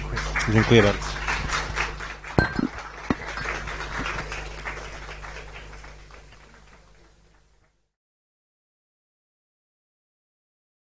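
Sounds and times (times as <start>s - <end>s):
audience applauding: 0.0s - 7.5s.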